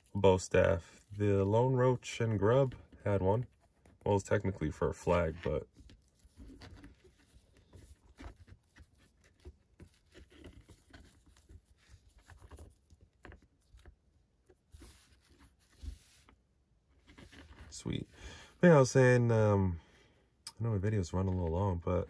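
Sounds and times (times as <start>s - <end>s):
small clicks and rustles: 5.1s - 18.0s.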